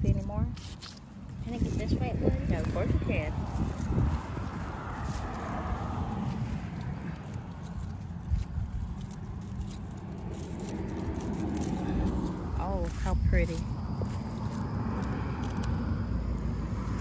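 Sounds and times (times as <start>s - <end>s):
wind rumble on microphone: 0.0s - 17.0s
person speaking: 1.4s - 3.5s, 12.1s - 13.8s
pruning shears clicking: 5.3s - 12.6s.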